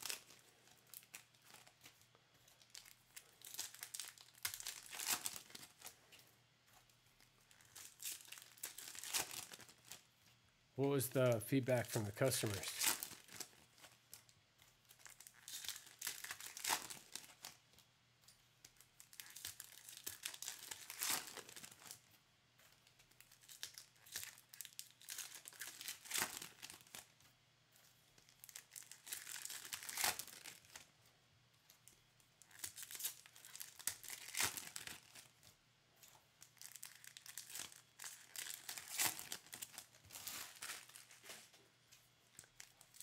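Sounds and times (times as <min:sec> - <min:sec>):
foil wrappers tearing and crinkling: 0:00.0 - 0:06.0, 0:07.3 - 0:10.0, 0:11.8 - 0:17.6, 0:18.6 - 0:22.0, 0:22.8 - 0:27.2, 0:28.2 - 0:30.9, 0:32.4 - 0:35.5, 0:36.4 - 0:41.5, 0:42.4 - 0:43.0.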